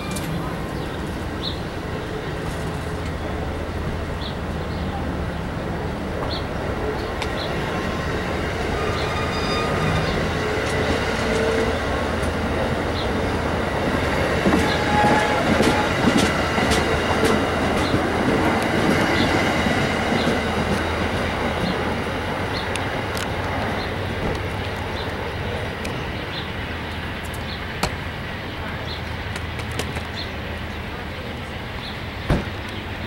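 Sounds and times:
train wheels clattering over rail: 8.5 - 24.8
wheel squeals: 8.8 - 11.7.

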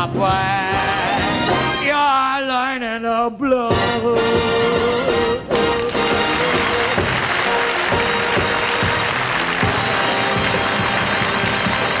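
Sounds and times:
stage band music: 0.0 - 2.2, 3.5 - 12.0.

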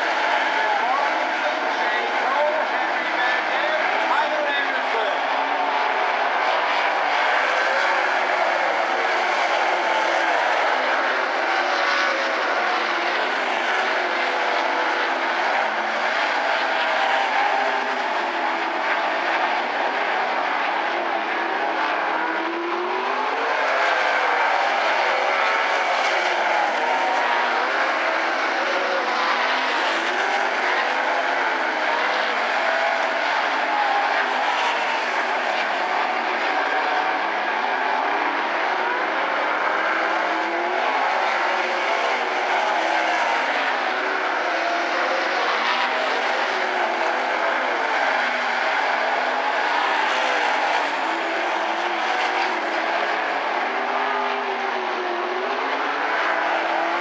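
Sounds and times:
race car engines revving: 0.0 - 57.0.

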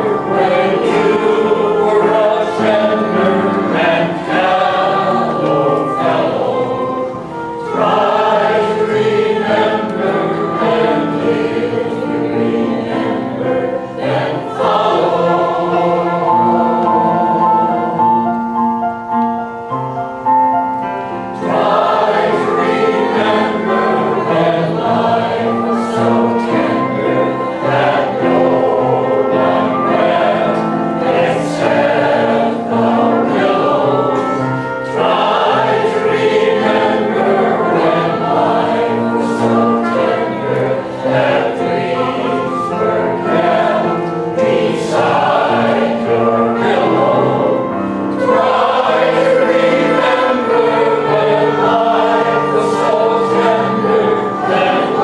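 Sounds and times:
mixed choir singing: 0.0 - 19.0, 20.8 - 55.0
piano accompaniment: 0.0 - 55.0.

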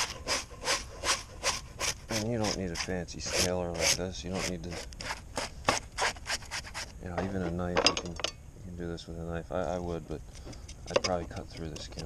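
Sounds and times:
fish scaler scraping scales: 0.0 - 7.0.

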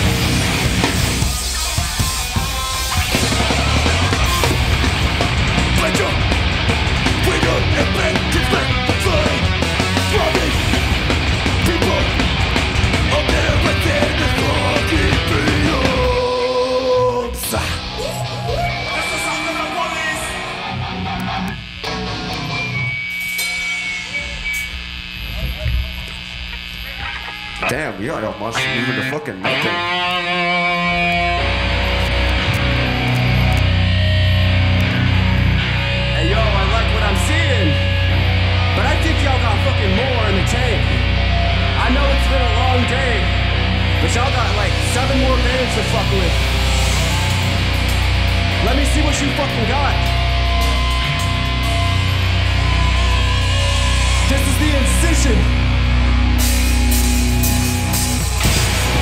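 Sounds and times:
drum kit pounding: 0.0 - 16.4, 43.4 - 59.0
full band playing hardcore: 0.0 - 24.5, 28.6 - 59.0
distorted electric guitars: 0.0 - 59.0.

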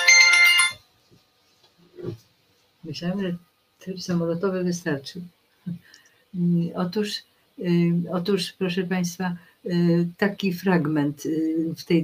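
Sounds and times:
phone ringtone melody: 0.0 - 0.8.

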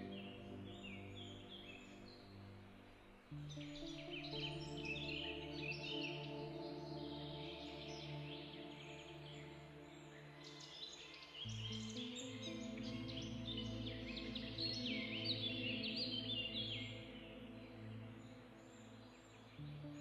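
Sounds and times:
soft ambient music: 0.0 - 20.0.

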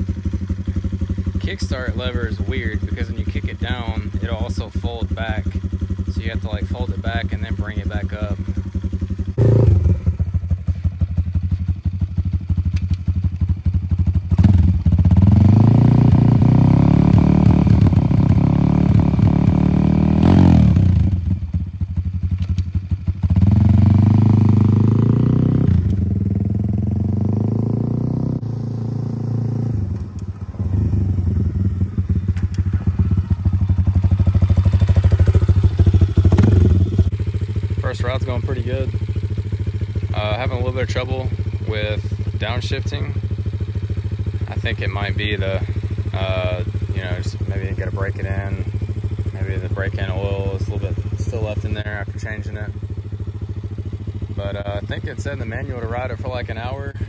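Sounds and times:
motorbike engine revving: 0.0 - 57.0.

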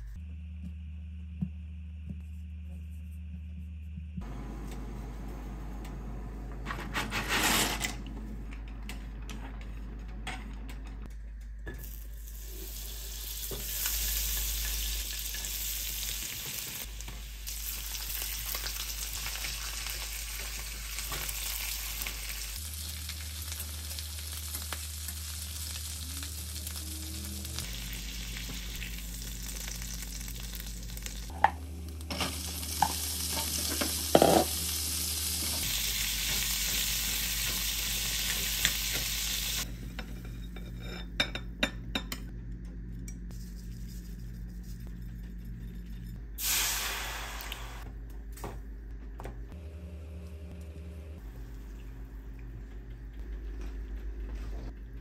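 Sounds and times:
food sizzling in hot oil: 11.8 - 26.8, 27.5 - 31.4, 32.0 - 39.7, 46.4 - 47.8.

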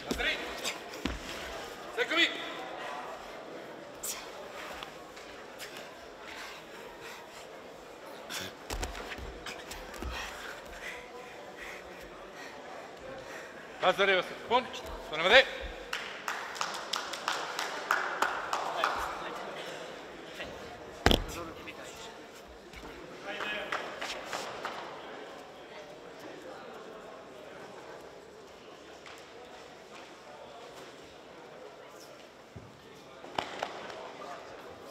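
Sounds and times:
murmur of sports hall: 0.0 - 34.9
people clapping: 15.3 - 19.6, 23.2 - 25.0.

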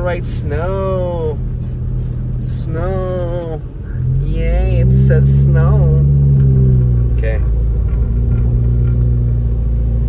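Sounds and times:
car engine drone: 0.0 - 10.0.

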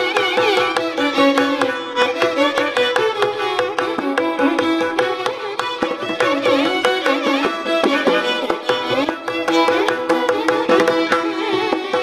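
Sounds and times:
violins playing melody: 0.0 - 12.0.

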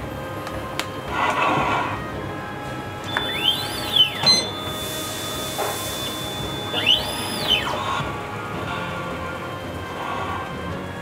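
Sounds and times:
crepe machine motor whine: 0.0 - 11.0
music playing: 0.0 - 11.0
steady high tone: 1.1 - 10.2.

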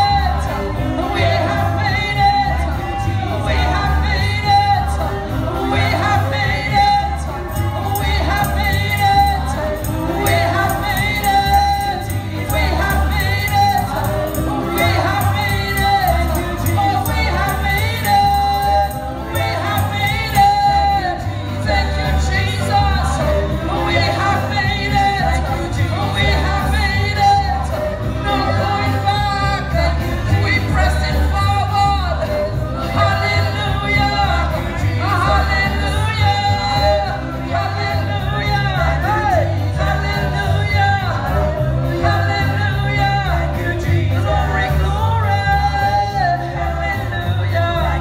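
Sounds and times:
drums keeping a steady beat: 0.0 - 48.0
live band with electric guitar: 0.0 - 48.0
women singing gospel song: 0.0 - 48.0.

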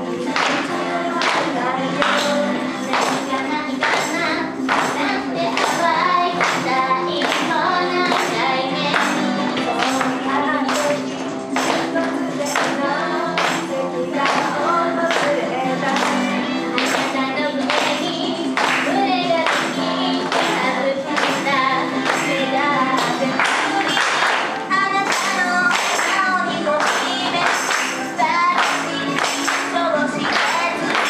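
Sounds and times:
backing music: 0.0 - 31.0
female group singing pop song: 0.0 - 31.0.

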